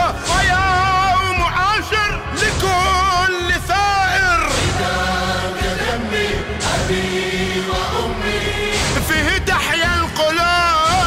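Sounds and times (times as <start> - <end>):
male choir singing elegy: 2.3 - 11.0.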